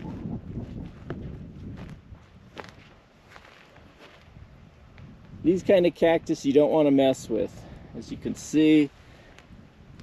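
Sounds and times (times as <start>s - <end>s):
footsteps on dry ground: 0.0s - 5.4s
wind rumble on microphone: 0.0s - 6.5s, 7.1s - 10.0s.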